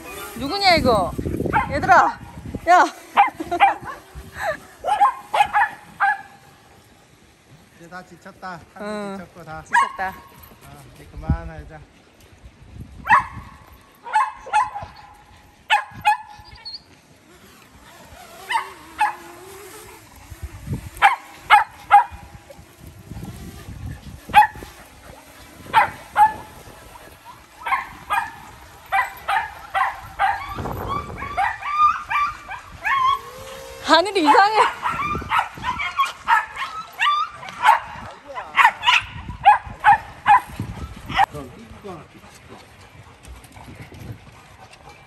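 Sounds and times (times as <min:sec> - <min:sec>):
dogs barking: 0:01.4 - 0:02.2, 0:04.8 - 0:06.5, 0:09.7 - 0:10.3, 0:13.1 - 0:16.4, 0:18.4 - 0:19.6, 0:21.0 - 0:22.4, 0:24.2 - 0:33.4, 0:34.0 - 0:41.4.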